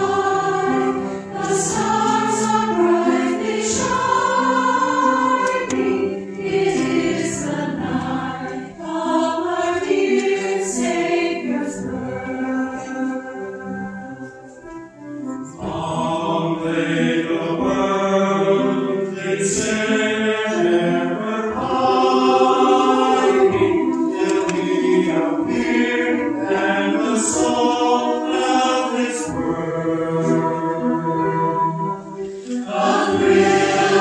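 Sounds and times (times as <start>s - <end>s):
mixed choir singing: 0.0s - 14.6s, 15.4s - 34.0s.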